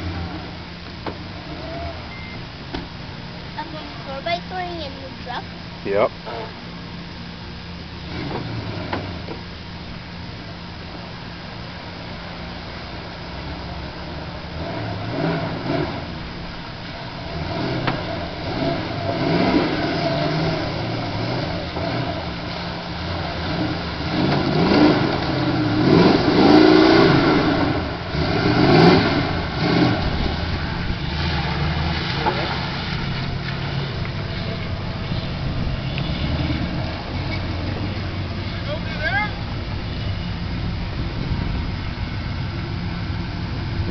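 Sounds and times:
truck engine revving: 0.0 - 43.9.

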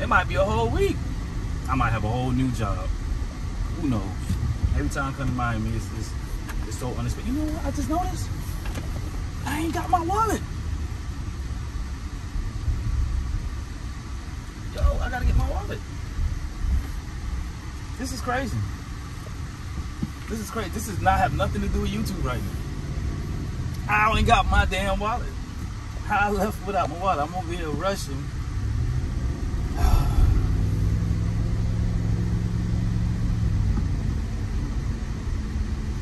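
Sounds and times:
car road and engine rumble: 0.0 - 36.0.

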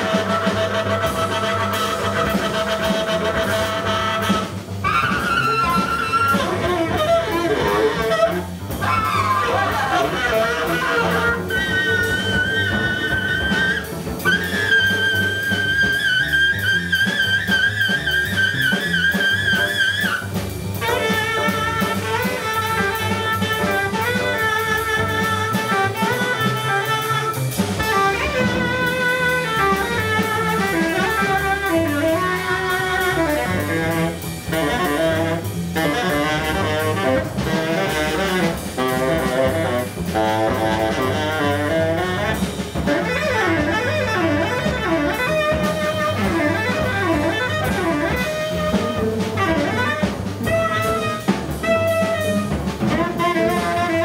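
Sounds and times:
drum kit: 0.0 - 54.0
tenor saxophone: 0.0 - 54.0
upright bass: 0.0 - 54.0.

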